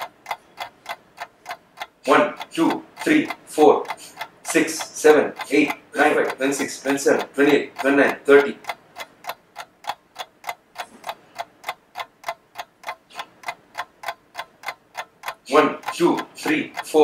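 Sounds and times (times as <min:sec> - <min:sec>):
steady ticking: 0:00.0 - 0:17.0
man counting: 0:02.0 - 0:08.8, 0:13.1 - 0:13.4, 0:15.3 - 0:17.0.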